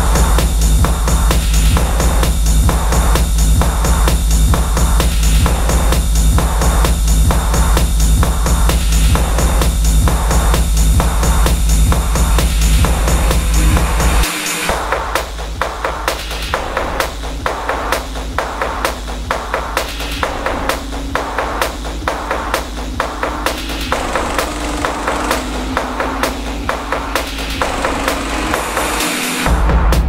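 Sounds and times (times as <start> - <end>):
sharp clicking percussion: 0.0 - 29.5
low bass rumble: 0.0 - 30.0.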